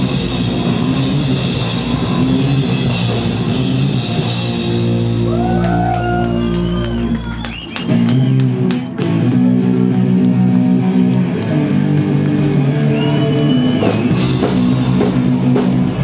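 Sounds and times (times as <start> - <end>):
electric guitar chords: 0.0 - 16.0
live rock band playing: 0.0 - 16.0.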